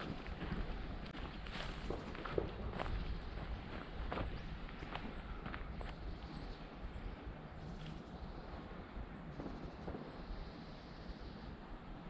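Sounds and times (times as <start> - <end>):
footsteps walking: 0.0 - 6.0.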